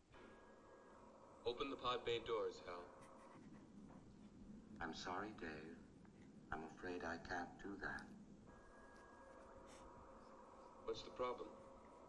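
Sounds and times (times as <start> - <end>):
faint steady hiss: 0.0 - 12.0
man speaking: 1.5 - 2.9, 4.8 - 5.8, 6.5 - 8.1, 10.8 - 11.5.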